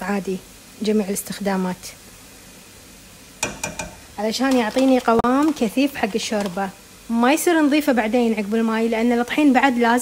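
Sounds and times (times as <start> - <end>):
mushrooms sauteing in a pot: 0.0 - 10.0
spoon tapping: 3.4 - 4.1.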